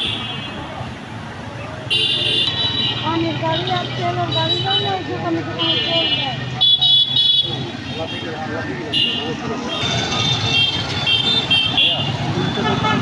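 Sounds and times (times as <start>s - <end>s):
street traffic engine hum: 0.0s - 13.0s
people talking: 3.0s - 10.6s, 11.3s - 13.0s
vehicle horn beeps: 10.1s - 13.0s.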